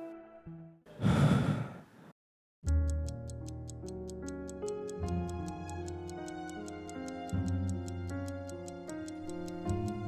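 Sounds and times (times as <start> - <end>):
man sighing: 0.9 - 2.1
soft background music: 2.7 - 10.0.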